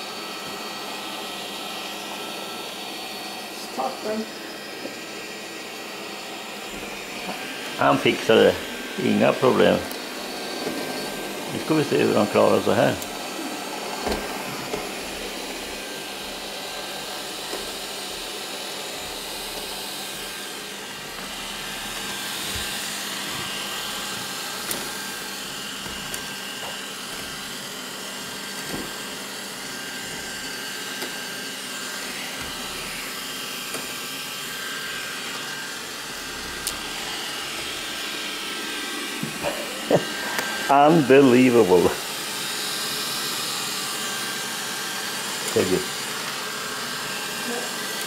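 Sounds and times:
robot vacuum cleaner whirring: 0:00.0 - 0:48.0.

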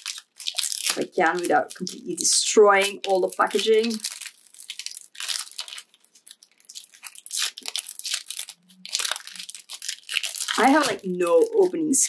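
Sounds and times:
plastic wrapper crackling: 0:00.0 - 0:12.0.

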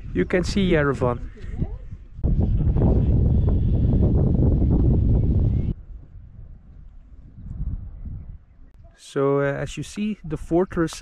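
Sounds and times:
faint wind: 0:00.0 - 0:11.0
wind blowing on microphone: 0:00.0 - 0:11.0.

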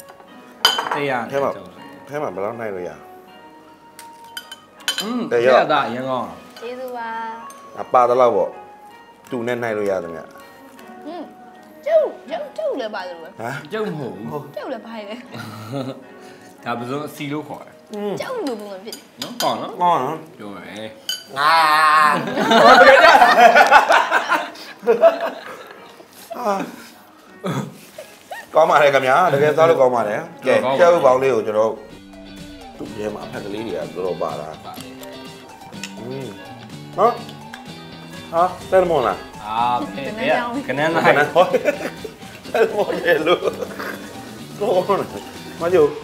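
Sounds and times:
dishes and cutlery clinking: 0:00.0 - 0:01.3, 0:04.0 - 0:05.3, 0:07.4 - 0:08.0, 0:18.4 - 0:19.8, 0:21.0 - 0:21.4
faint background music: 0:00.0 - 0:46.0
tableware clinking: 0:00.6 - 0:01.1, 0:04.0 - 0:05.3, 0:21.0 - 0:21.4.

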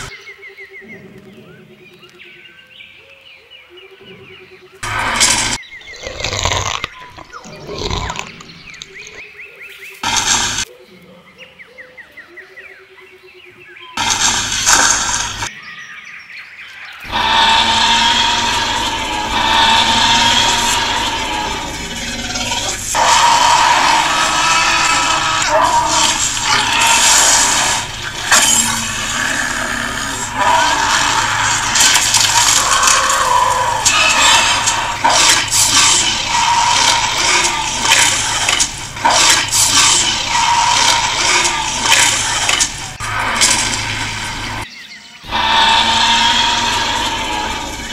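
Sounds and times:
monster roaring and growling: 0:04.8 - 0:09.2, 0:14.0 - 0:15.5, 0:17.1 - 0:44.6, 0:45.3 - 0:47.9.

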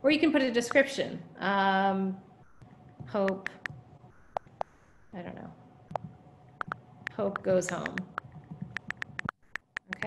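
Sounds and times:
taps on a touchscreen: 0:03.0 - 0:03.8, 0:05.9 - 0:10.0.

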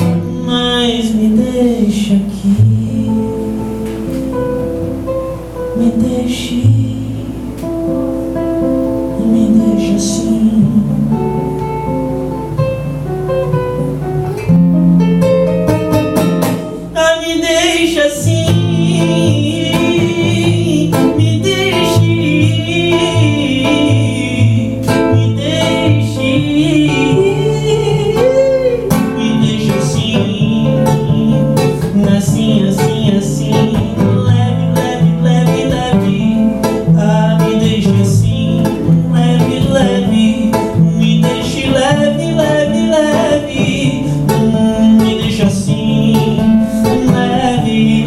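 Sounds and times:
man singing: 0:00.0 - 0:04.2, 0:05.4 - 0:07.8, 0:08.9 - 0:11.8, 0:16.2 - 0:48.0
acoustic guitar strummed and picked: 0:00.0 - 0:48.0.

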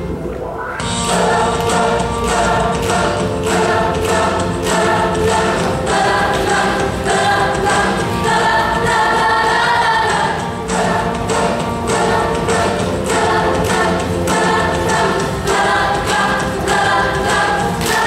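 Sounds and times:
choir singing in harmony: 0:00.8 - 0:18.0.

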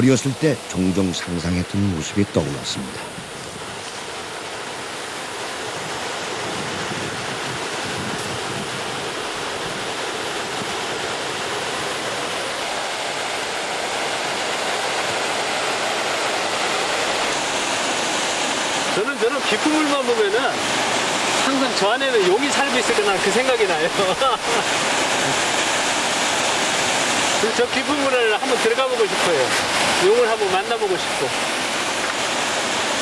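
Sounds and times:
waterfall rushing: 0:00.0 - 0:33.0.

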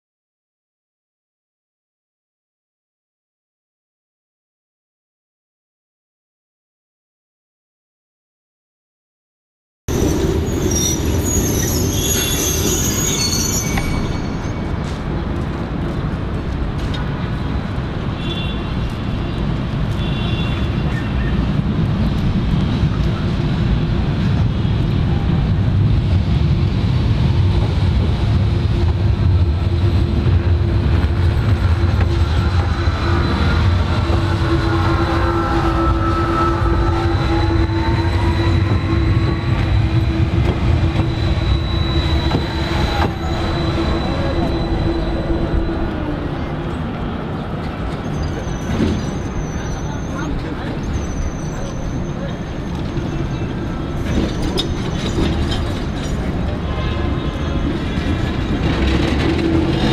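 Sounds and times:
tram humming: 0:09.9 - 0:59.9
tram rolling rumble: 0:09.9 - 0:59.9
gliding whining tones: 0:29.7 - 0:46.8.

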